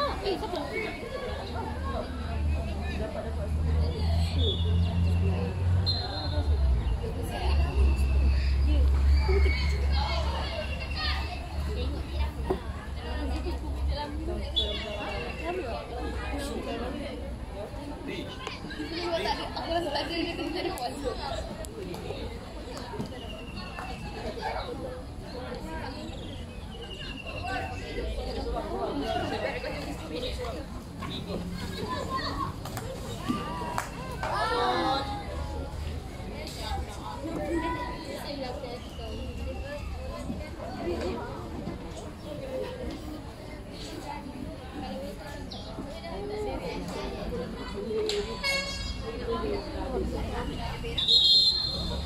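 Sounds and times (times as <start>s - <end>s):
girls calling and shouting: 0.0s - 52.0s
young voices shouting: 31.3s - 35.6s.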